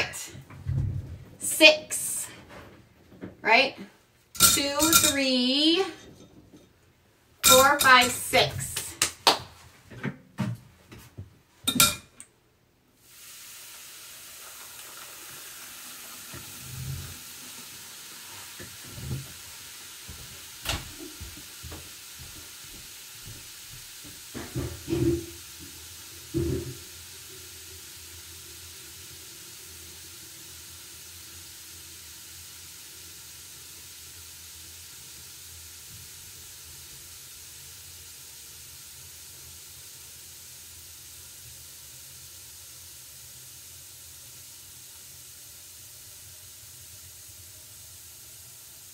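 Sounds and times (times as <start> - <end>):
tablets fizzing in water: 13.0 - 48.9.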